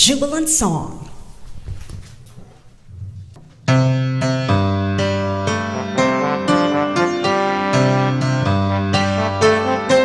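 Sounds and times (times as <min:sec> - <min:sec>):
piano playing loud chords: 0:03.6 - 0:10.0.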